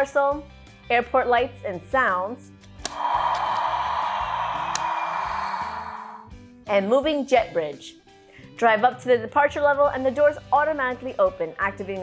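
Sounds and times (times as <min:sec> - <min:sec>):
background music: 0:00.0 - 0:12.0
toy speaker hiss: 0:02.9 - 0:06.3.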